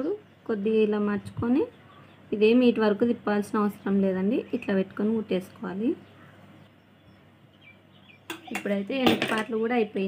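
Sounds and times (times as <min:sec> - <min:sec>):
woman speaking: 0:00.0 - 0:06.1, 0:08.4 - 0:10.0.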